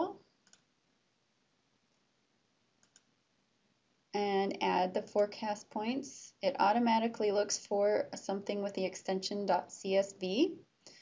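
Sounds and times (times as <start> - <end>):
computer mouse clicking: 0.4 - 0.7, 2.8 - 3.1.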